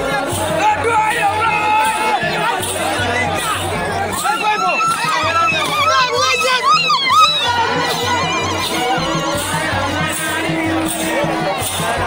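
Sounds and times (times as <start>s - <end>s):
drum beating fast: 0.0s - 12.0s
high wavering voices singing: 0.0s - 12.0s.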